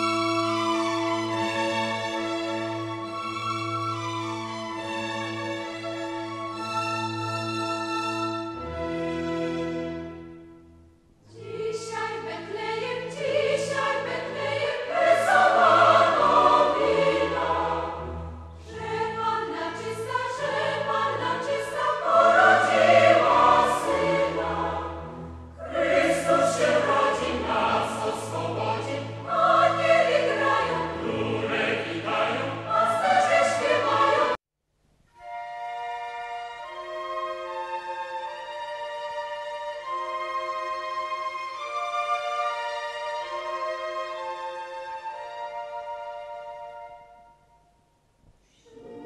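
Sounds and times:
choir singing classical music: 0.0s - 34.4s, 35.2s - 47.8s, 48.6s - 49.0s.

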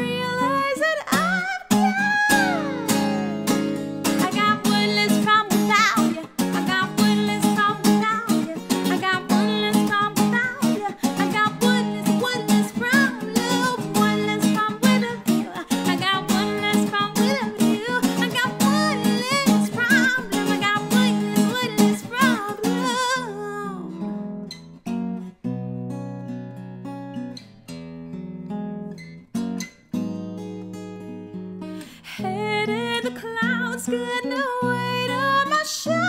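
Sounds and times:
woman singing: 0.0s - 24.3s, 31.9s - 36.0s
acoustic guitar strumming: 0.0s - 36.0s.

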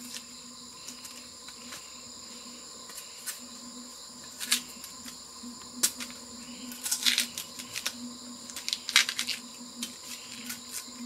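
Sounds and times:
insects shrilling: 0.0s - 11.0s.

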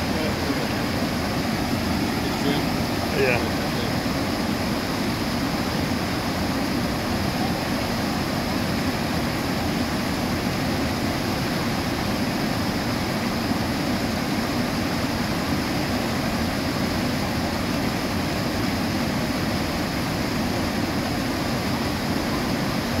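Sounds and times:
water rushing over dam spillway: 0.0s - 23.0s.

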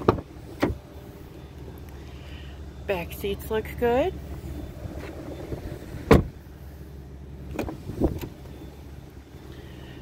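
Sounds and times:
car door slamming shut: 6.0s - 6.4s.

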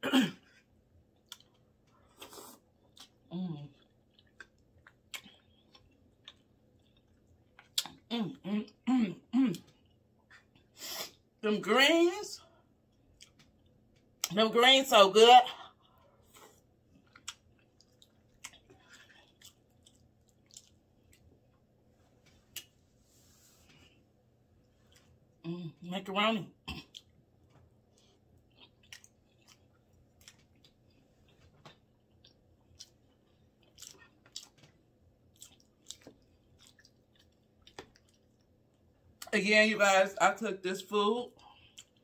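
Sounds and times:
person chewing soft food: 0.4s - 8.1s, 9.5s - 11.2s, 12.5s - 14.3s, 15.6s - 25.4s, 26.7s - 39.3s, 41.4s - 42.0s.

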